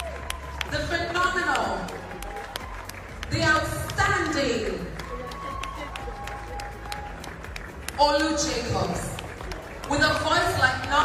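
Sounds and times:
audience applause: 0.0 - 11.0
sharp claps: 0.0 - 11.0.

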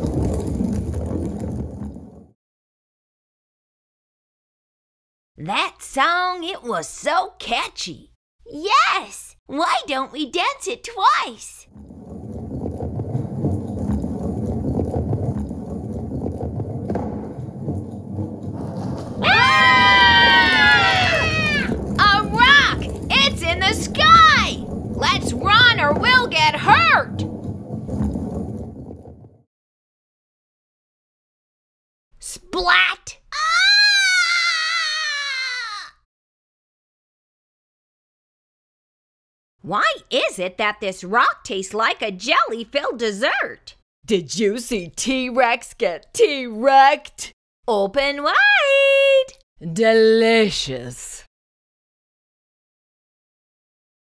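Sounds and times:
low steady rumble: 11.8 - 29.2
person screaming: 19.2 - 21.7, 33.3 - 36.0.

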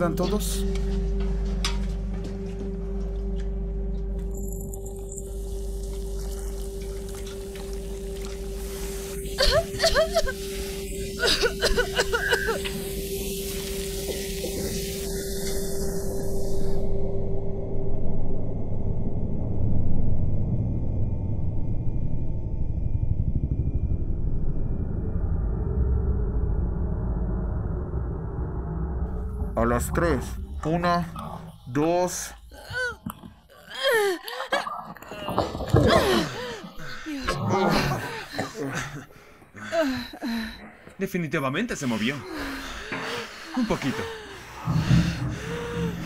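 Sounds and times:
music drone: 0.0 - 19.8, 42.2 - 46.0
low rumble: 0.0 - 33.5, 42.3 - 46.0
chemicals hissing: 5.4 - 16.4
strained vocal sounds: 29.4 - 40.9.

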